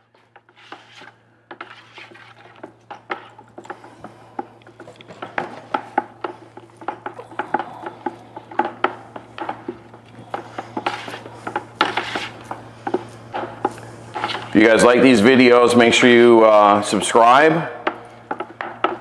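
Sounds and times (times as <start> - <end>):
sticks knocking on plastic pails: 1.5 - 14.4.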